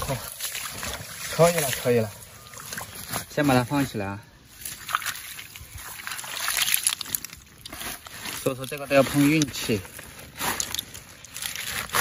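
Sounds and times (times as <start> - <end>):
plastic sack rustling: 5.8 - 12.0.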